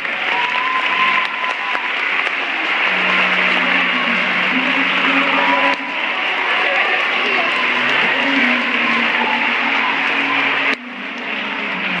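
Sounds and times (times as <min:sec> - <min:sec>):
audience applauding: 0:00.0 - 0:12.0
crowd noise: 0:00.0 - 0:12.0.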